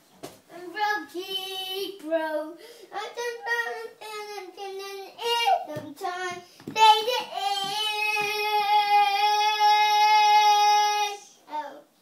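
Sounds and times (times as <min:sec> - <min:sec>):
boy singing unaccompanied: 0:00.5 - 0:11.9.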